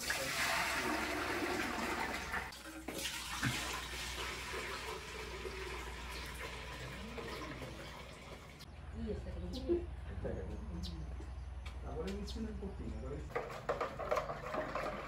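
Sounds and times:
milk pouring into metal pots: 0.0s - 8.6s, 13.3s - 15.0s.

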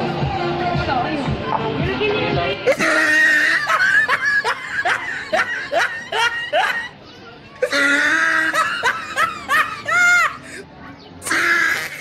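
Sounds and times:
person laughing: 2.7s - 6.9s, 7.7s - 10.6s.

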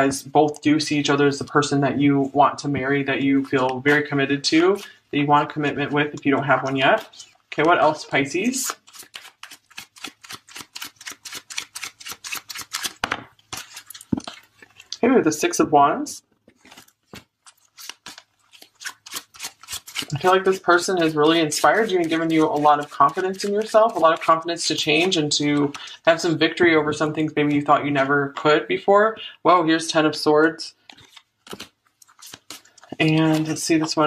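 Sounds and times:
cards flicking and sliding: 8.5s - 14.2s, 16.6s - 24.4s, 30.9s - 34.0s.

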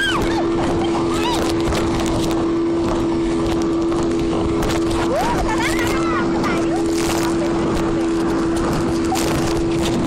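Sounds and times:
speedboat engine drone: 0.0s - 10.0s
wind and water rushing: 0.0s - 10.0s.

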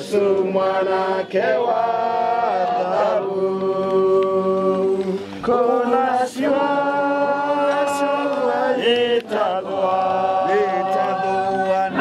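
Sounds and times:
people singing unaccompanied: 0.0s - 12.0s.

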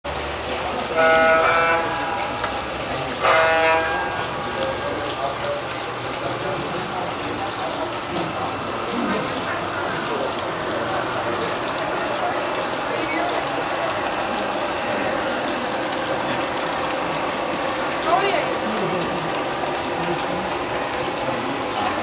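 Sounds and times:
model train running on track: 0.0s - 22.0s
model train horn blast: 0.8s - 5.7s.

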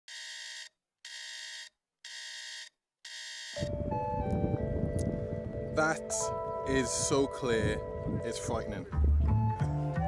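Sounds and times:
electronic alarm beeping: 0.1s - 3.7s.

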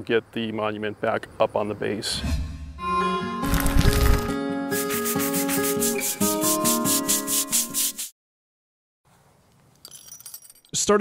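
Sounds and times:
fast shaker beat: 3.5s - 8.1s.

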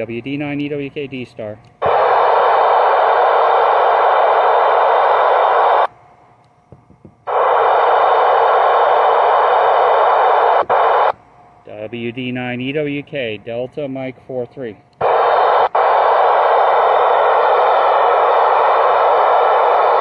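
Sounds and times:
radio static hiss bursts: 1.8s - 5.9s, 7.2s - 11.2s, 15.0s - 20.0s.

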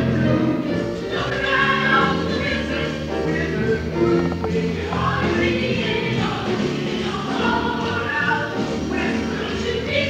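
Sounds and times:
group singing blues song: 0.0s - 10.0s
instrumental accompaniment: 0.4s - 9.7s.

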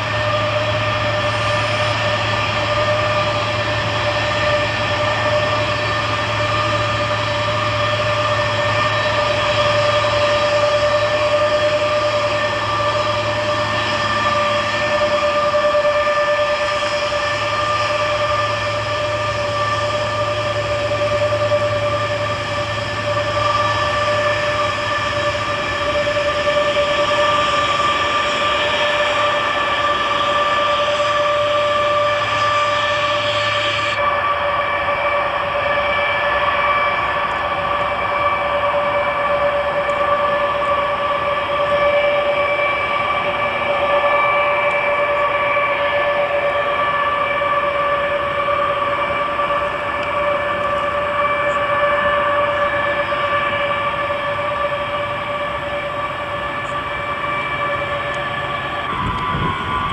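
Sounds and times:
jet engine whine: 0.0s - 59.9s
low hum: 0.0s - 59.9s
rushing noise: 0.0s - 59.9s.

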